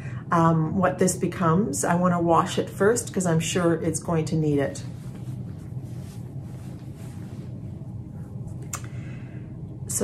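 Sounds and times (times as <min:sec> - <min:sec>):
low room hum: 0:00.0 - 0:10.0
fabric rustling: 0:04.6 - 0:08.6.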